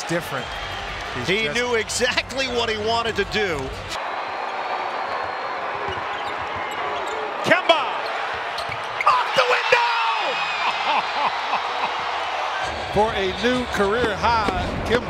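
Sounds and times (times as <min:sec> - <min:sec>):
crowd noise: 0:00.0 - 0:15.0
sneakers squeaking: 0:04.4 - 0:09.4.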